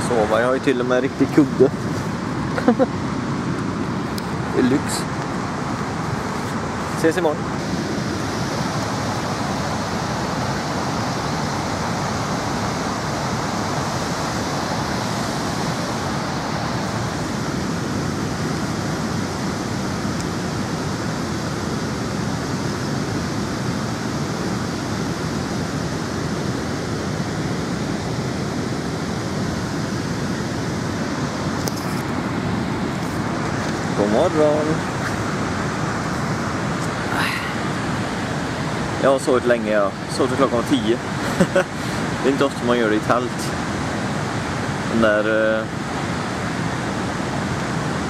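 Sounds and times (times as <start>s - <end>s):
waterfall rushing: 0.0s - 48.0s.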